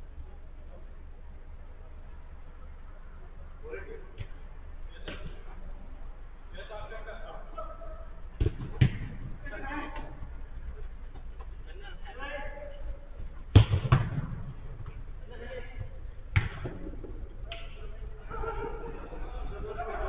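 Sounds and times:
players calling: 0:02.4 - 0:13.6, 0:14.6 - 0:20.0
football being kicked: 0:08.4 - 0:09.4, 0:13.5 - 0:15.0, 0:16.3 - 0:17.3.

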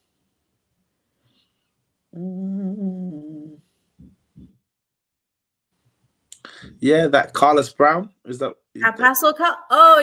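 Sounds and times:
person humming: 0:02.1 - 0:04.6.

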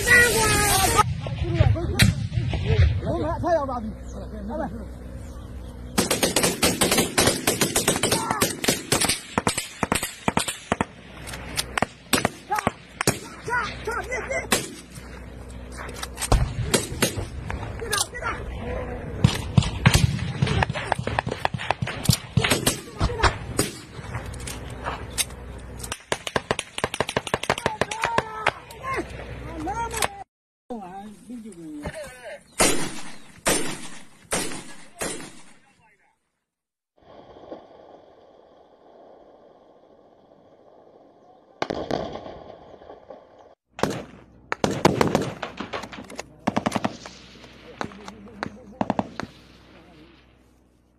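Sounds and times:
men shouting: 0:00.0 - 0:01.0
rifle gunfire: 0:06.0 - 0:13.8, 0:14.4 - 0:14.9, 0:19.2 - 0:24.2, 0:25.9 - 0:28.2, 0:32.6 - 0:35.6, 0:41.6 - 0:42.7, 0:43.8 - 0:49.6.

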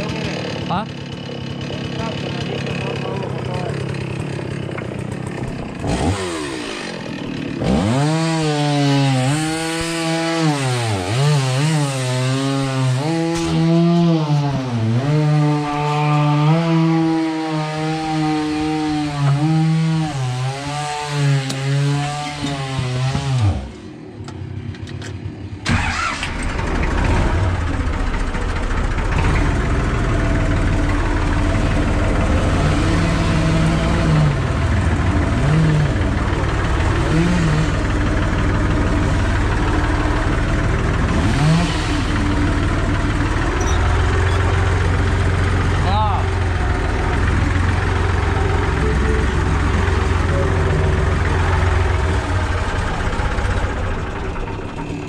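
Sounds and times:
chainsaw running: 0:00.0 - 0:24.1, 0:25.7 - 0:55.0
tractor diesel engine running: 0:00.0 - 0:55.0.

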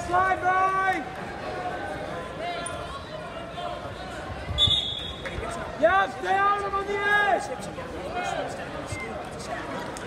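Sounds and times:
referee's whistle blast: 0:04.6 - 0:05.3.

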